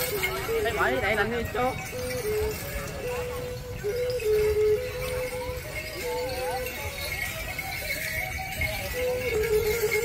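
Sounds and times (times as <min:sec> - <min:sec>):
gliding melody line: 0:00.0 - 0:10.0
held melody notes: 0:00.0 - 0:10.0.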